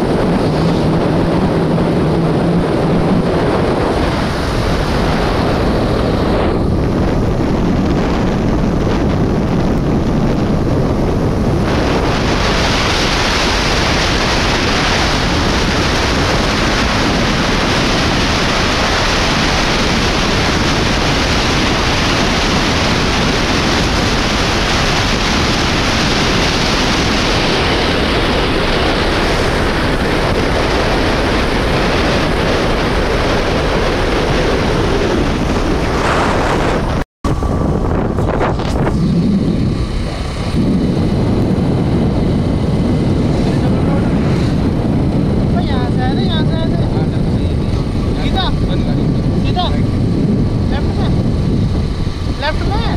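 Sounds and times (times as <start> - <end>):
motorcycle engine running: 0.0 - 52.9
road rumble: 0.0 - 52.9
wind rushing on microphone: 0.0 - 52.9.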